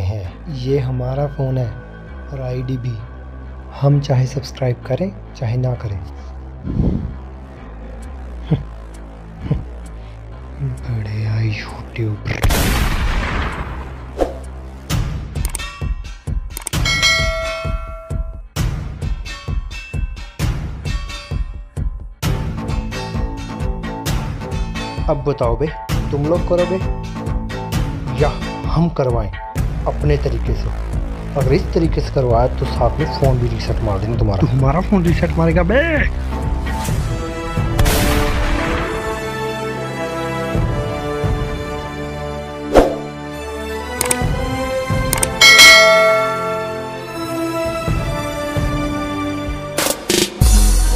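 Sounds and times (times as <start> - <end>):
background music: 0.0 - 50.9
bell chime ding: 16.8 - 18.4, 45.4 - 47.0
music with heavy drum hits: 49.5 - 50.9.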